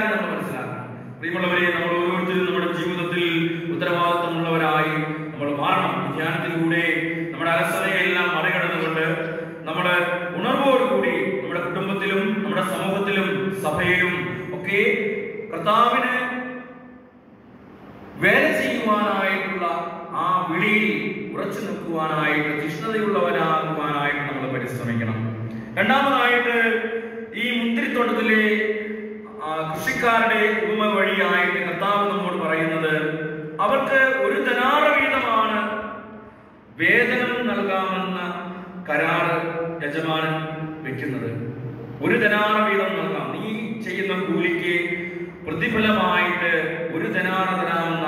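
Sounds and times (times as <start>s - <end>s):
man speaking over microphone: 0.0s - 16.4s, 18.2s - 36.0s, 36.8s - 48.0s
man chanting into a microphone: 42.0s - 48.0s.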